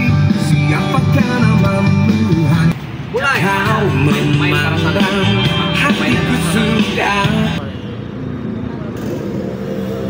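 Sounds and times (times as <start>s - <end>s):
indistinct voices: 0.0s - 7.9s
street traffic noise: 0.0s - 10.0s.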